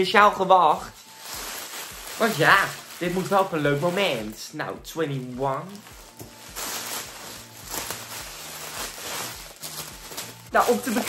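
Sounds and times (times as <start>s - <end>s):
cellophane crinkling: 0.9s - 4.4s, 5.3s - 11.0s.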